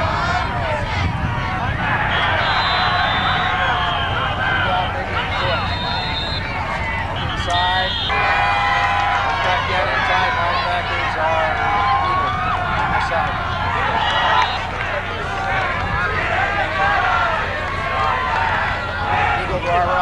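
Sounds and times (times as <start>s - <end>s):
crowd shouting and cheering: 0.0s - 20.0s
steady low hum: 0.0s - 20.0s.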